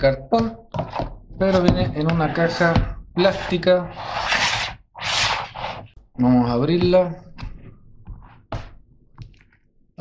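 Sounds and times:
plastic case scraping on mat: 0:00.8 - 0:06.0.

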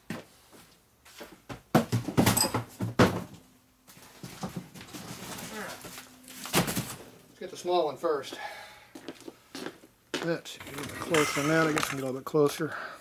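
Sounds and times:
cardboard boxes knocking and scuffing: 0:01.5 - 0:03.4
footsteps on shop floor: 0:09.0 - 0:10.4.

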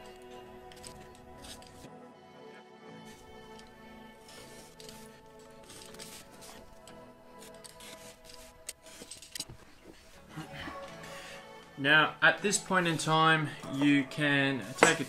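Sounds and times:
background music: 0:00.0 - 0:15.0
box cutter slicing paper: 0:14.6 - 0:15.0.

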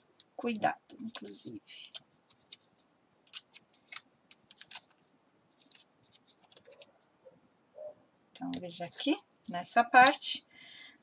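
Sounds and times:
masking tape crackling: 0:00.0 - 0:07.1.

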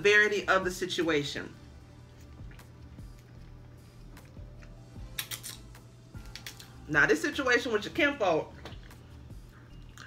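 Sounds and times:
biting into crisp shrimp: 0:02.1 - 0:06.8.

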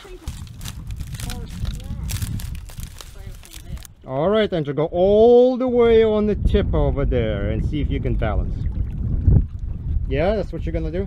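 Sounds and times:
footsteps crunching on reeds and shale: 0:00.0 - 0:03.9
reeds rustling and snapping: 0:00.0 - 0:03.9
steady low rumble: 0:00.0 - 0:05.2.

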